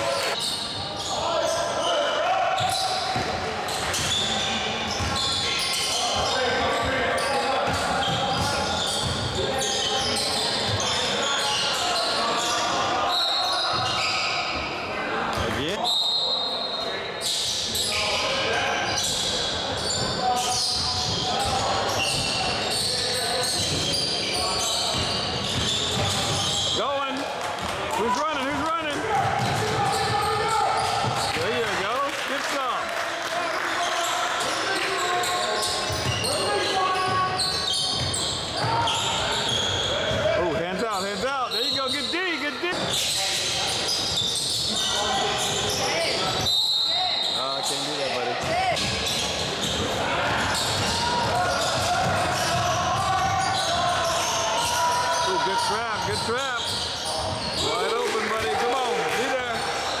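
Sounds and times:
voices of players and spectators: 0.0s - 60.0s.

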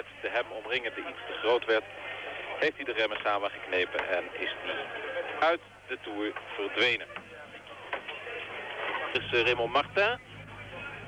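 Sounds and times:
faint broadcast background noise: 0.0s - 11.0s.

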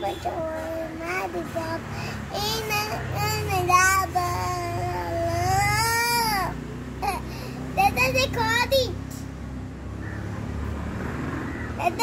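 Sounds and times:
girl singing long high notes: 0.0s - 8.8s.

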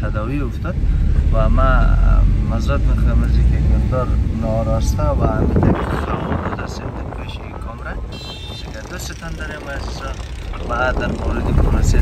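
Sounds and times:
car engine rumble and road noise: 0.0s - 12.0s.

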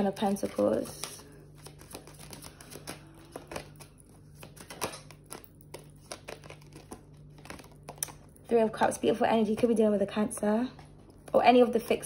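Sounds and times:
cards being shuffled: 0.0s - 8.3s
faint steady hum: 0.0s - 12.0s.

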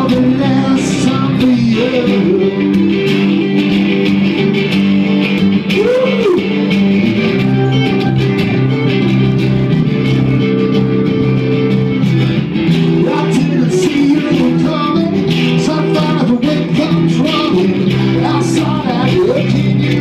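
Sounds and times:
man singing: 0.0s - 2.8s, 5.7s - 6.6s, 12.8s - 20.0s
acoustic guitar chords: 0.0s - 20.0s.

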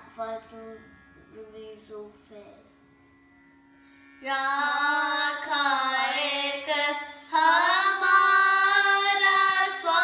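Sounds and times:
steady low drone: 0.0s - 10.0s
children singing devotional song: 4.2s - 10.0s.

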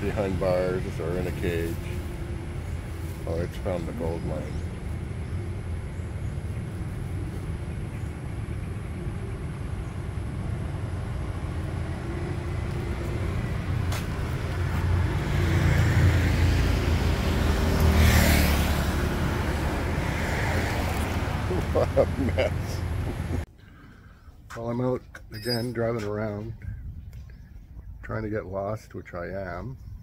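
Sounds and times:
vehicle passing close: 0.0s - 23.5s
road traffic rumble: 0.0s - 29.6s.

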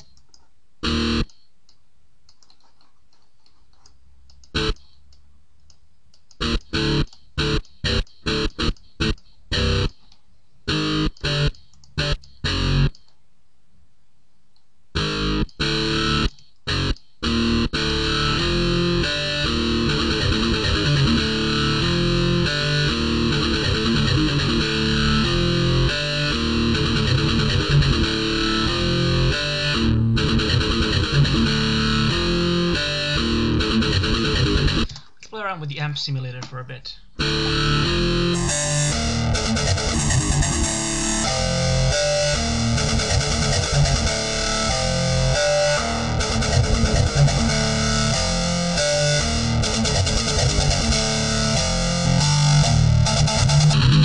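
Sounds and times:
distorted electric guitar notes: 0.8s - 1.3s, 4.5s - 4.8s, 6.4s - 10.0s, 10.7s - 13.0s, 15.0s - 35.0s, 37.1s - 54.0s
palm-muted chugging metal riff: 15.0s - 34.9s, 37.2s - 54.0s.

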